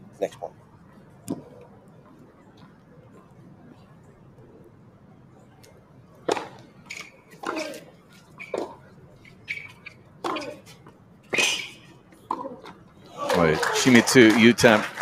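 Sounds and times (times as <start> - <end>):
man talking: 0.2 - 0.6, 13.2 - 15.0
tennis ball bouncing on hard court: 6.2 - 7.8, 8.4 - 10.7
racket hitting tennis ball: 6.2 - 12.8.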